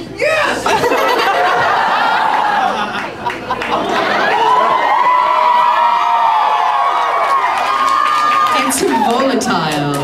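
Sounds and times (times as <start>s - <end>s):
audience cheering and whooping: 0.2s - 9.5s.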